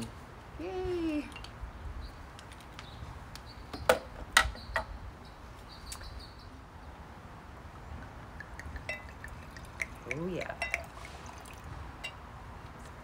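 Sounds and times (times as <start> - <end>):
small birds chirping: 0.6 - 7.1.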